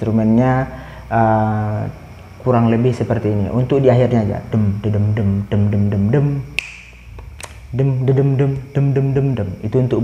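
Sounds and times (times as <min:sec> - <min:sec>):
man vocalising drum rhythm: 0:00.0 - 0:10.0
sharp clicks: 0:06.6 - 0:07.7.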